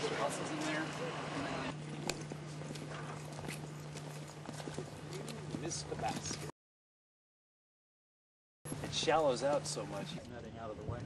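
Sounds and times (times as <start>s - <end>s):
steady low hum: 0.0s - 6.5s
footsteps on concrete: 1.8s - 6.5s, 8.7s - 10.2s.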